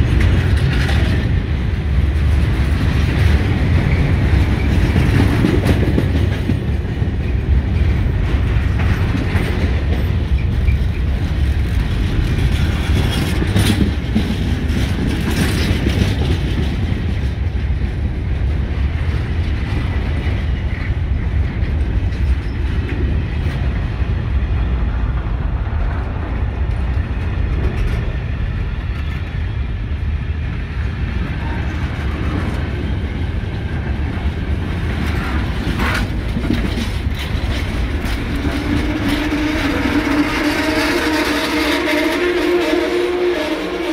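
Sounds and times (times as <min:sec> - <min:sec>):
train wheels rumbling on rails: 0:00.0 - 0:43.9.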